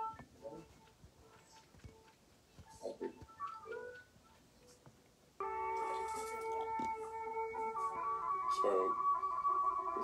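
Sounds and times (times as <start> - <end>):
ceremonial music through laptop speaker: 5.4 - 10.0.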